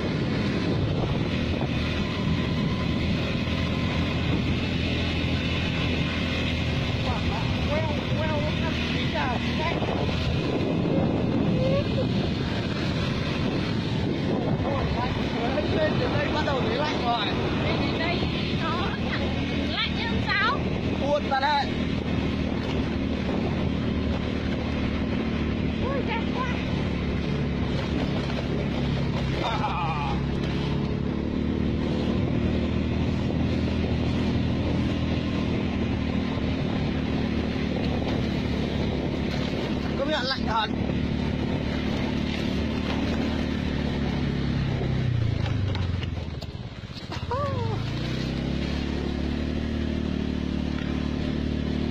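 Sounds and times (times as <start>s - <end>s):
motorbike engine running: 0.0s - 51.9s
wind rushing over microphone: 0.0s - 51.9s.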